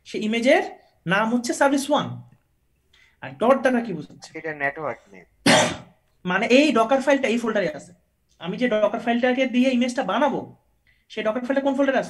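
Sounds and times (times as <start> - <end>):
person's voice: 3.2 - 5.4
harsh throat clear: 4.8 - 6.0.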